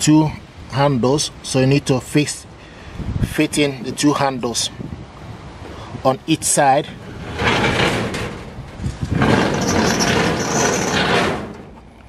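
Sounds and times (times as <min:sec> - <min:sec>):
sliding door scraping metal track: 0:06.8 - 0:11.9.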